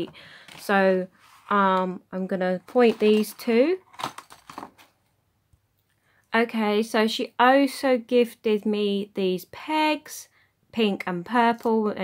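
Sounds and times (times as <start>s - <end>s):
paper rustling: 2.7s - 5.0s.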